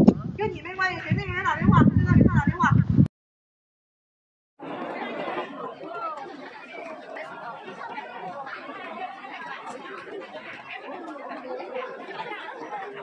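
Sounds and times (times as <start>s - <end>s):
crowd chatter: 4.6s - 13.0s.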